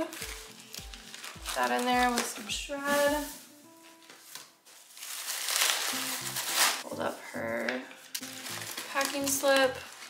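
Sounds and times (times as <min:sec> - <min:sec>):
paper shred rustling: 0:00.0 - 0:06.8, 0:07.9 - 0:10.0.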